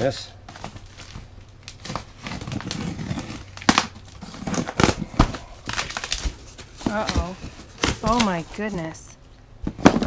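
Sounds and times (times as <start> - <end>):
cardboard and tape crinkling: 0.0 - 9.0.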